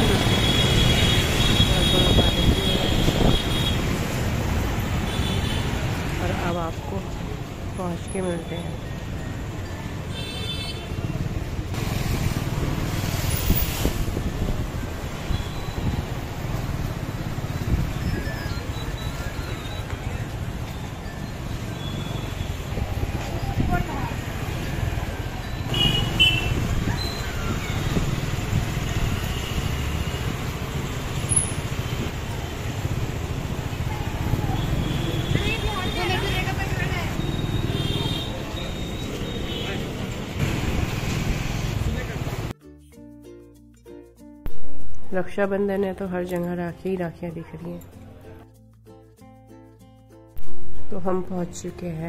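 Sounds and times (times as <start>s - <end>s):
scooter engine and wind rumble: 0.0s - 6.3s, 10.9s - 39.2s, 39.8s - 42.5s.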